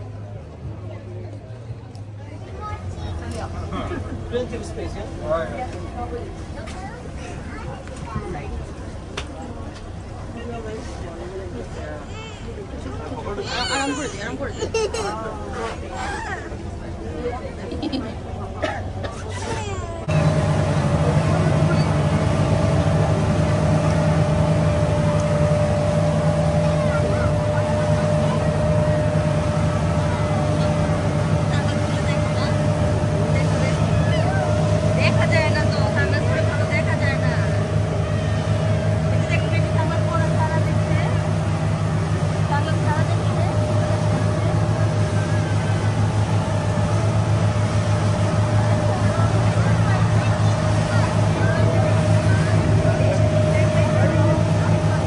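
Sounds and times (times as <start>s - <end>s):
motorboat engine drone: 0.0s - 55.0s
water rushing past hull: 15.2s - 55.0s.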